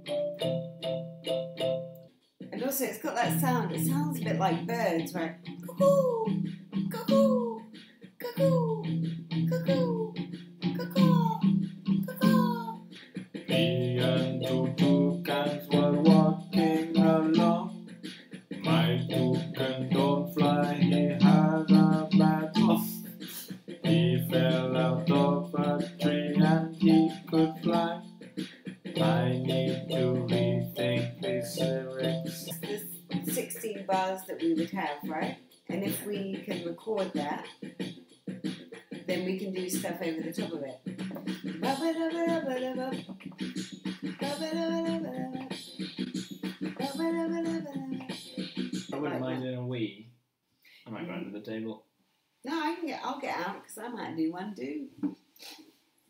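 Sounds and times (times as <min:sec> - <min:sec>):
keyboard chords over low bass: 0:13.5 - 0:17.6, 0:18.7 - 0:22.8, 0:23.8 - 0:28.1, 0:29.0 - 0:32.4.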